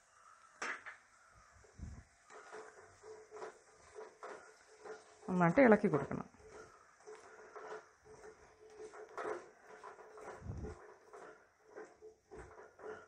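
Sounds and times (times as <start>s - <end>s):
spatula scraping a pot: 1.4s - 13.0s.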